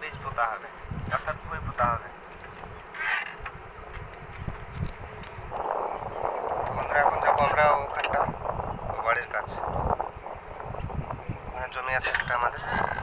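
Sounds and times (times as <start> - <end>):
wind buffeting microphone: 0.0 - 13.0
man's voice: 6.7 - 9.8.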